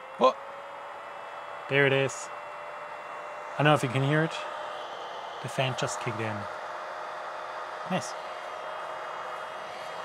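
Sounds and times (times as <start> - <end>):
cooling fan running: 0.0 - 10.0.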